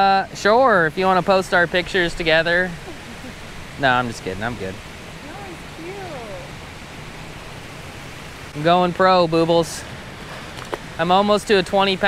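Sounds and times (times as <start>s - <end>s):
water rushing over spillway: 0.0s - 12.0s.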